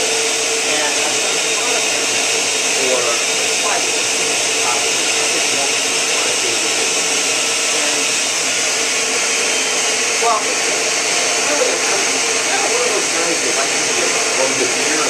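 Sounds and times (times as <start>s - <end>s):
electric blender whirring: 0.0s - 15.0s
faint voice: 0.6s - 8.1s, 10.2s - 15.0s.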